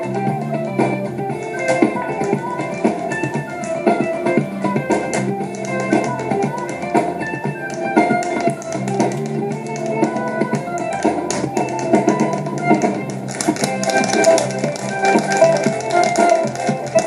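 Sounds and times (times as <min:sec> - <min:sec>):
dance music: 0:00.0 - 0:17.0
hard shoes tapping on stage floor: 0:00.0 - 0:17.0.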